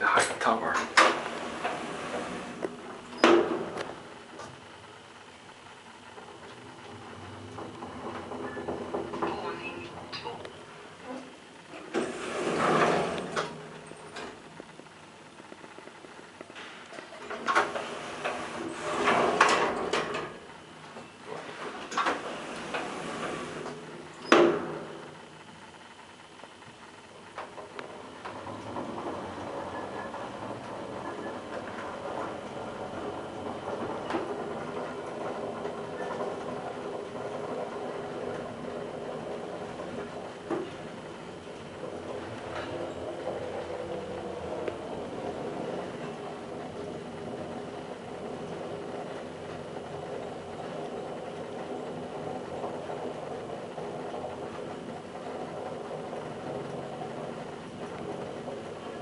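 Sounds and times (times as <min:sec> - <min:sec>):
elevator doors sliding: 0:00.0 - 0:59.0
elevator door clicks: 0:06.2 - 0:10.6.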